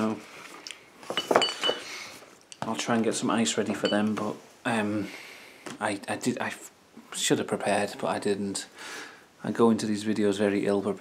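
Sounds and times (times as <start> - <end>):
glass bottles clinking: 1.1 - 1.9, 3.7 - 4.2.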